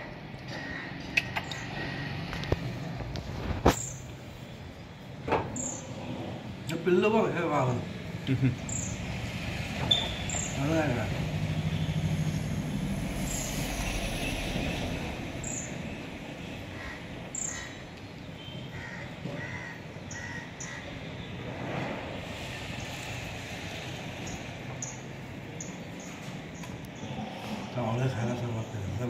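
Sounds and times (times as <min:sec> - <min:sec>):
birds chirping: 0:00.0 - 0:07.2, 0:08.2 - 0:14.3, 0:15.3 - 0:21.4, 0:22.6 - 0:29.0.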